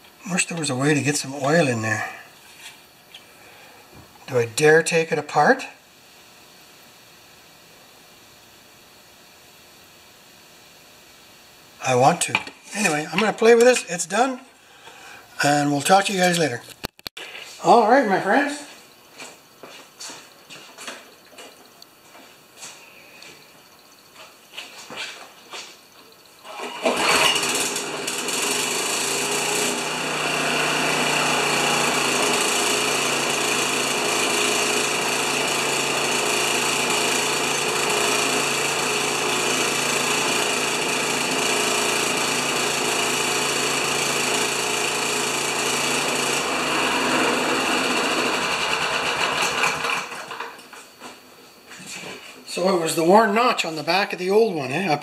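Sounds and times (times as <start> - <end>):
lawn mower engine running: 26.4 - 50.6.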